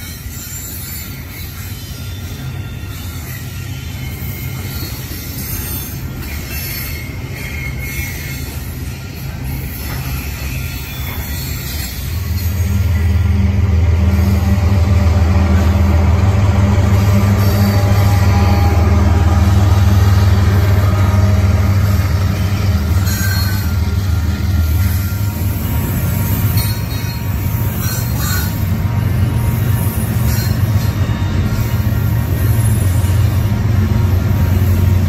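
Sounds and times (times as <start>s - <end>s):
freight train rumbling on rails: 0.0s - 35.0s.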